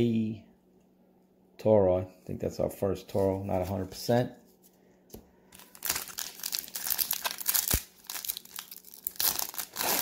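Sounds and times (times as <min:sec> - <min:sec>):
foil wrapper crinkling: 0:05.6 - 0:10.0.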